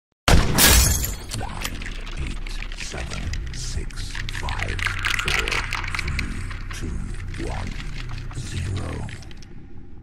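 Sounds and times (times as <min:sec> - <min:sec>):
glass shattering: 0:00.4 - 0:01.9.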